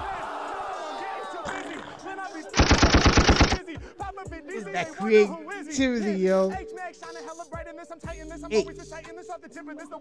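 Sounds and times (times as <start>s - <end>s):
hip hop beat: 2.0s - 10.0s.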